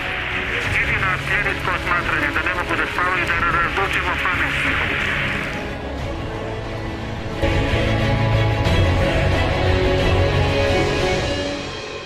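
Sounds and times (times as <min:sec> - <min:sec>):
men speaking: 0:00.5 - 0:05.5.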